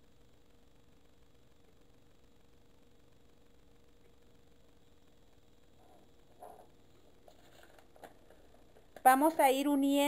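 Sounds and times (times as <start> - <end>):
paper and plastic rustles and taps: 7.2 - 9.4.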